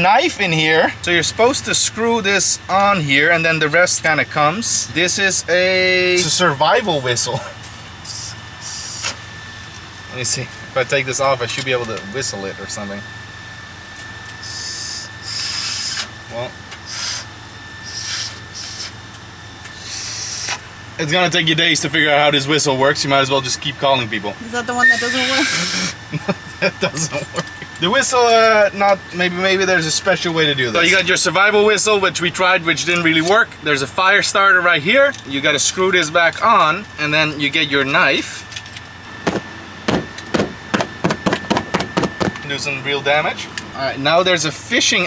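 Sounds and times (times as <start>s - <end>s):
airy hisses through whistle: 8.1s - 9.1s, 14.4s - 16.0s, 16.9s - 19.0s, 19.7s - 20.6s, 24.8s - 26.0s.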